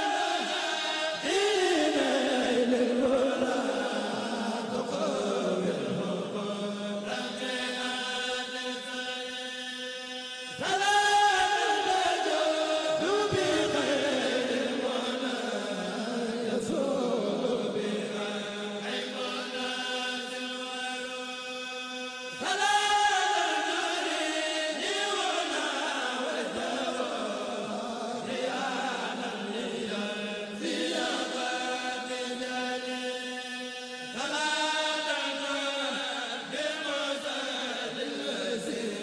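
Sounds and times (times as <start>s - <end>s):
men chanting a cappella: 0.0s - 39.0s.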